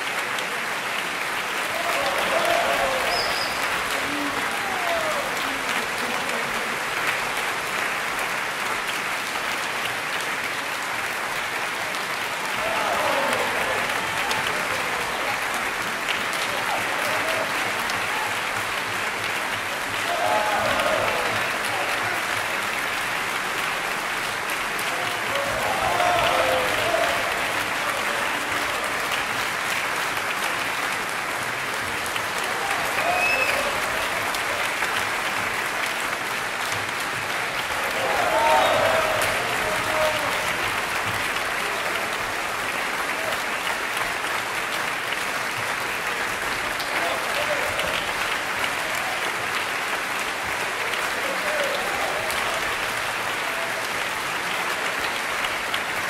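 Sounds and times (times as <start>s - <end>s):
audience clapping: 0.0s - 56.0s.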